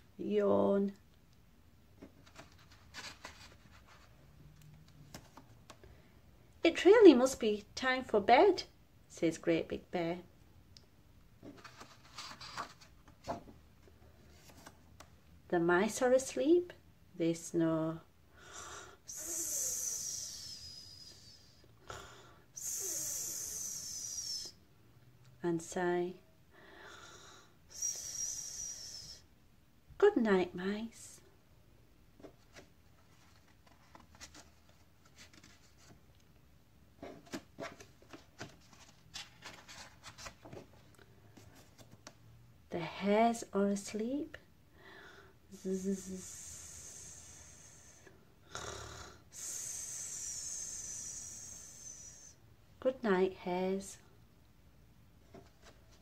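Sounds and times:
person hissing zzz: 18.5s - 21.6s, 22.6s - 24.6s, 27.7s - 29.2s, 45.6s - 52.4s
woman snoring: 48.5s - 49.2s.

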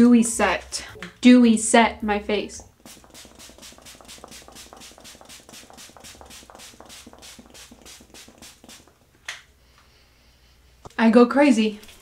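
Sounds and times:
loud spray puff: 2.8s - 8.9s
spray bottle spritzes: 2.8s - 9.0s.

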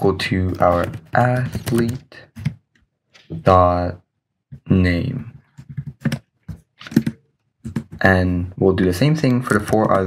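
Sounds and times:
computer keyboard typing: 0.3s - 2.8s, 5.6s - 8.1s.

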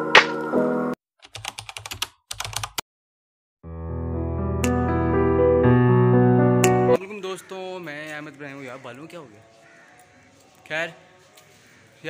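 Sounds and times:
computer keyboard typing: 1.2s - 2.8s
intro music: 3.7s - 7.0s.

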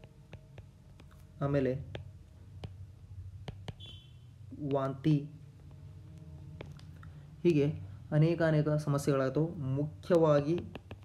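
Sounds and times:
stylus tapping on tablet: 0.0s - 7.0s, 10.0s - 11.0s
steady low hum: 0.0s - 11.0s.

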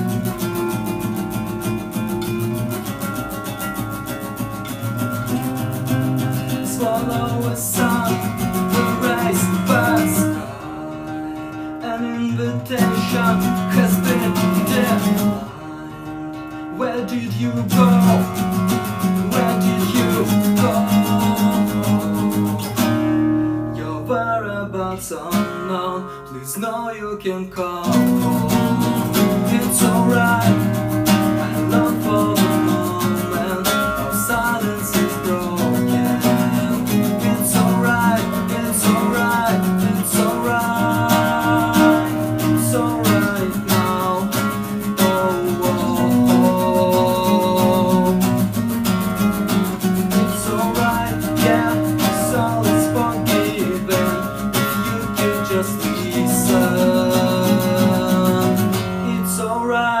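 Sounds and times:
classical guitars playing: 0.0s - 26.8s, 27.6s - 60.0s.

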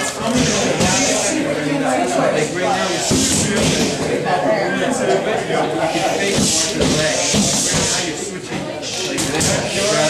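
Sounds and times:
indistinct chatter in echoing room: 0.0s - 10.0s.

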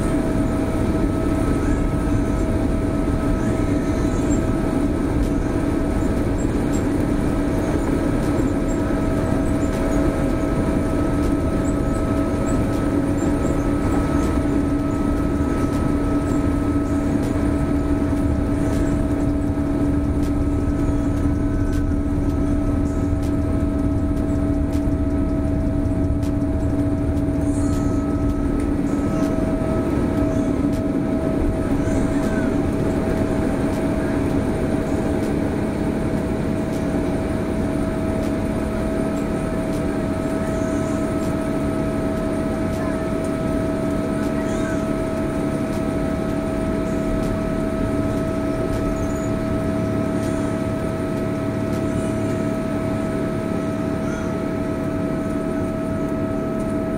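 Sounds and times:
jet engines rumbling: 0.0s - 56.9s
steady hum: 0.0s - 56.9s.

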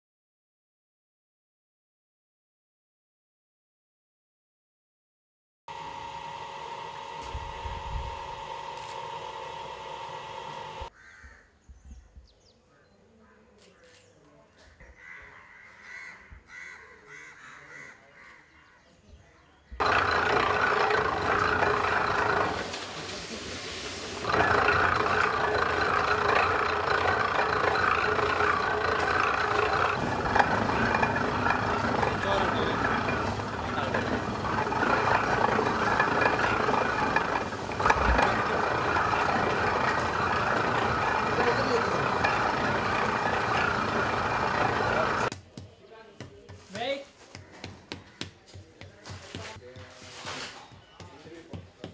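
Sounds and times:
geared machine running: 5.7s - 10.9s, 19.8s - 23.2s, 23.8s - 45.3s
faint crow calls: 10.9s - 11.6s, 14.7s - 18.9s, 47.2s - 48.7s.

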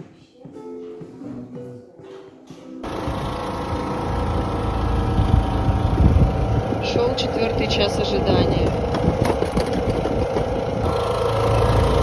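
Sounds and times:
loud engine rumble: 2.8s - 12.0s.

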